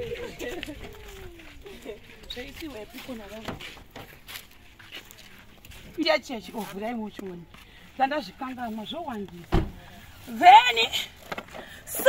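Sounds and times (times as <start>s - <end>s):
woman talking: 0.1s - 3.6s, 6.0s - 9.5s, 10.2s - 11.1s
car door shutting: 9.5s - 9.8s.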